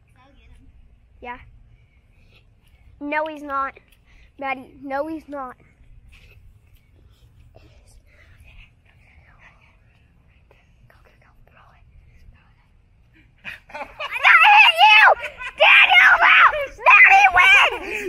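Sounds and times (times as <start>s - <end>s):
faint whispering: 7.0s - 12.9s
child screaming: 14.0s - 18.0s.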